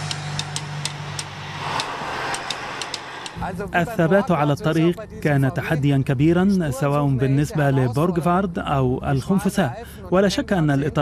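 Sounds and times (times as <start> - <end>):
light regular ticking: 0.0 - 3.4
car engine driving past: 0.0 - 4.3.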